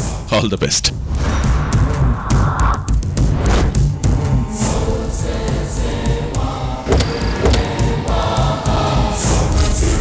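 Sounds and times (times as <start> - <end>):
hissing swell: 1.2 - 3.0
pulsing low beat: 1.4 - 9.1
choir singing: 3.9 - 10.0.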